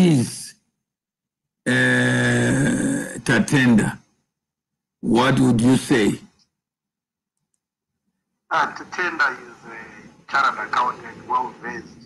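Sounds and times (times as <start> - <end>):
man hesitating uhh: 1.7 - 3.2.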